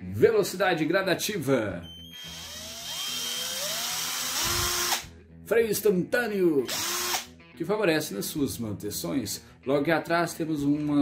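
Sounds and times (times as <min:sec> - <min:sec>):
cordless drill motor whine: 0:01.9 - 0:05.0, 0:06.7 - 0:07.2.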